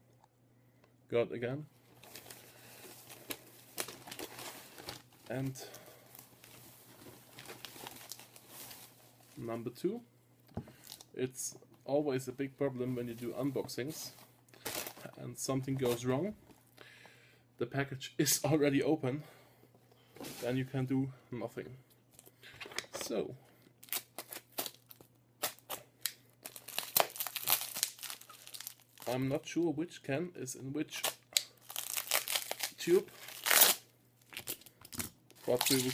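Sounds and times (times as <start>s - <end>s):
low steady hum: 0.0s - 35.9s
cardboard package rustling: 1.9s - 9.4s, 26.4s - 29.1s, 31.6s - 35.9s.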